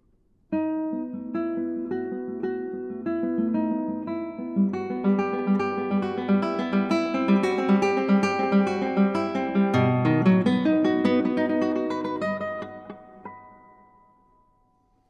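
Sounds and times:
acoustic guitar plucked notes: 0.6 - 14.7.

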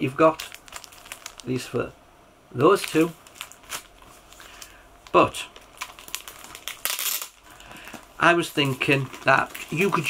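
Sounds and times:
plastic wrapper crinkling: 0.0 - 1.8, 2.7 - 10.0.

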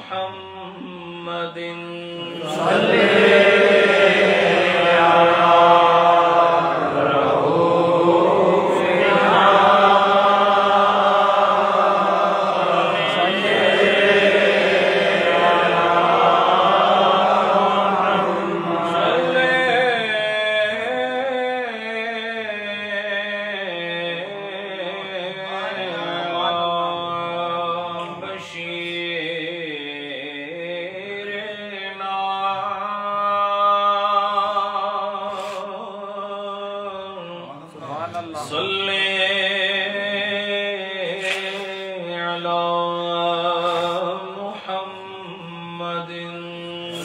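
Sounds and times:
man chanting: 0.0 - 47.0.

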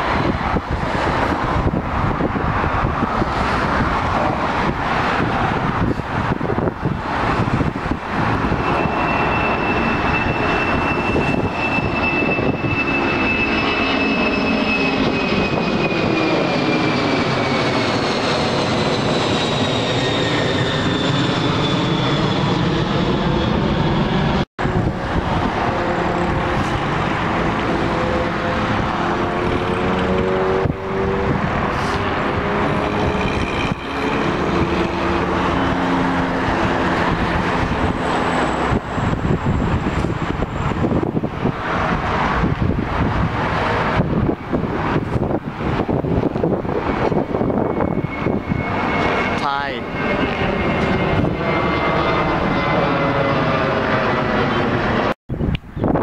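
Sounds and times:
airliner engine noise: 0.0 - 56.0
jet engines roaring overhead: 0.0 - 56.0.

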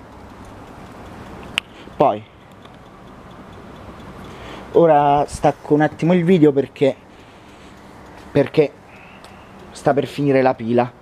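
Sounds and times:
sharp click: 0.0 - 6.1, 7.7 - 10.2
low background noise: 0.0 - 11.0.

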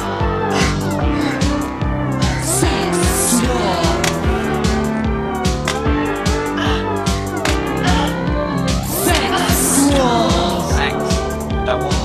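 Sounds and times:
drum machine beat: 0.0 - 12.0.

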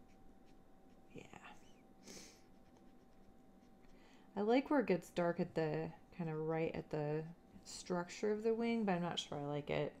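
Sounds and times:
marker strokes on card: 2.4 - 4.0.

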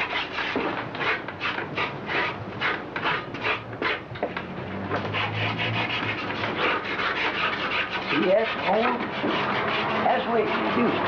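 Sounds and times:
paint brush scrubbing on board: 0.0 - 4.0, 4.9 - 11.0.

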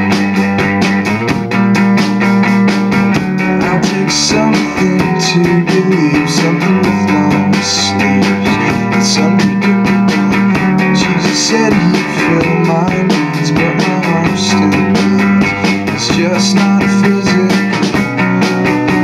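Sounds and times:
drum kit: 0.0 - 19.0
electric guitar strumming chords: 0.0 - 19.0.

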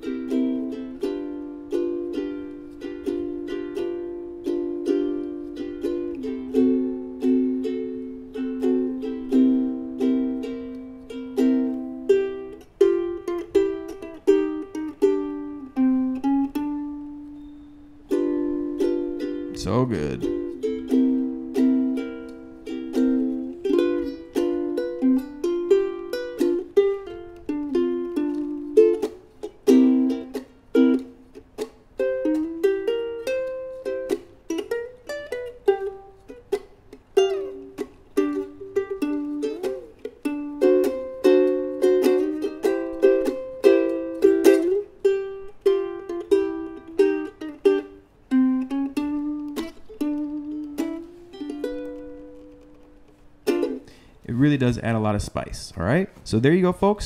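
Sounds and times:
ukulele strumming blues: 0.0 - 57.0.

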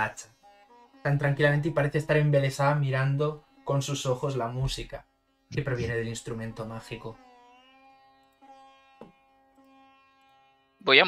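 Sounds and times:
faint sitar music: 0.0 - 10.8.

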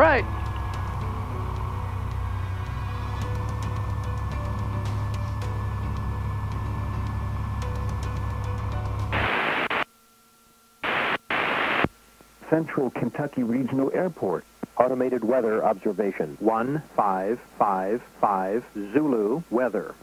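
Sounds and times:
aircraft engine idling drone: 0.0 - 9.8
radio static hiss: 9.1 - 20.0.

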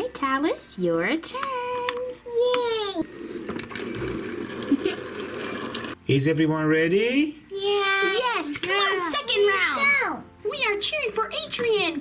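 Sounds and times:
plastic toys scraping on wooden floor: 3.0 - 6.0.

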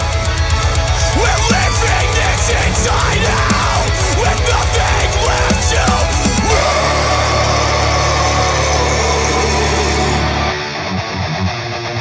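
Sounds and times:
heavy metal music: 0.0 - 12.0.

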